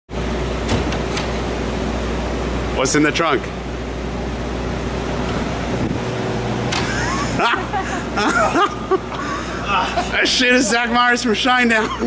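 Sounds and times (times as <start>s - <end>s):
machinery rumble and hum: 0.1s - 12.0s.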